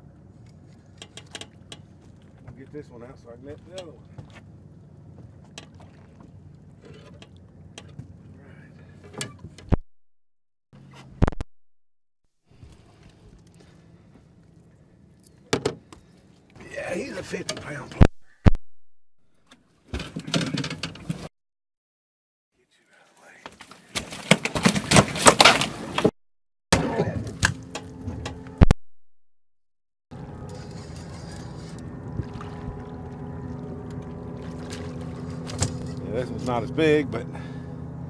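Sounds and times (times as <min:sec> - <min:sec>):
knocks and clunks on boat hull: 0:15.5 - 0:16.0
fish thrashing: 0:33.9 - 0:36.0.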